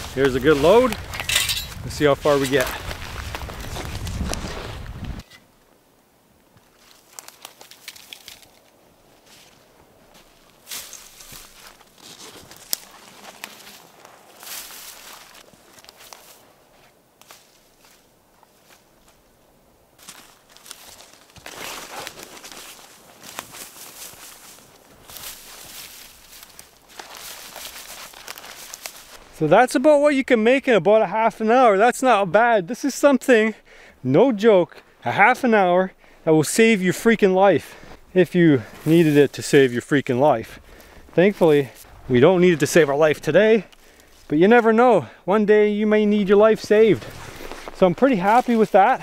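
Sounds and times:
footsteps crunching in snow: 0:00.0 - 0:05.2, 0:06.6 - 0:19.3, 0:20.0 - 0:29.4, 0:37.0 - 0:44.7, 0:46.0 - 0:49.0
pine boughs rustling: 0:00.0 - 0:05.8, 0:06.4 - 0:30.6, 0:34.3 - 0:49.0.

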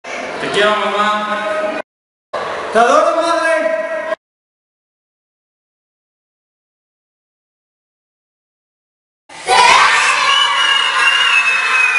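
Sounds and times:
children shouting and cheering: 0:09.3 - 0:11.9.

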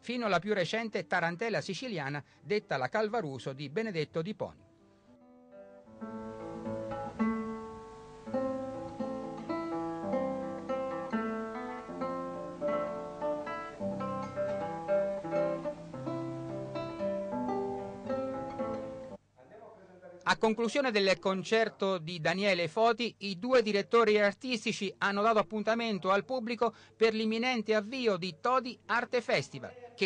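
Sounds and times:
classical guitar fingerstyle: 0:05.2 - 0:19.2.

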